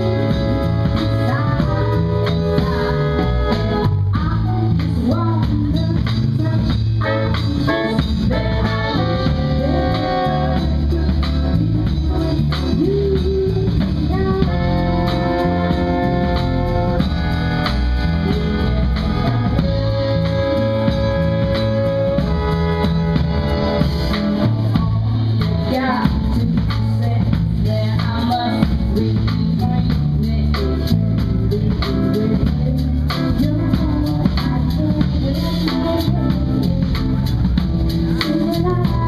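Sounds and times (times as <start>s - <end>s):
trumpet playing melody: 0.0s - 4.4s, 7.0s - 12.2s, 14.1s - 25.1s
saxophones playing melody: 0.0s - 4.5s, 6.9s - 26.0s
bass: 0.0s - 39.0s
drum kit: 0.0s - 39.0s.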